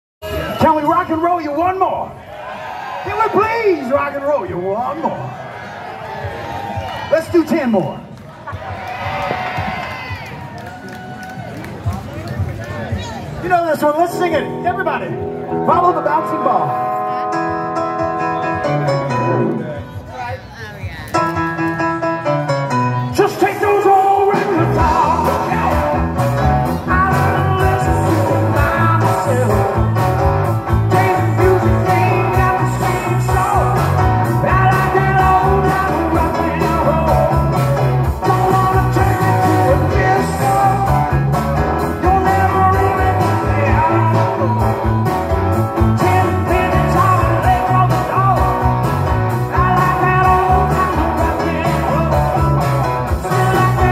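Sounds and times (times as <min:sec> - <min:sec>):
live rock band playing: 0:00.2 - 0:02.2, 0:13.1 - 0:53.9
lead and backing vocals: 0:23.5 - 0:30.0, 0:30.6 - 0:45.0, 0:45.8 - 0:53.9
steady drum beat: 0:23.7 - 0:53.9.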